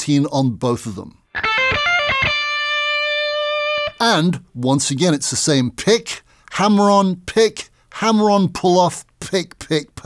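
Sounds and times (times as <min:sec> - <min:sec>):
electric guitar notes: 0:01.3 - 0:04.0.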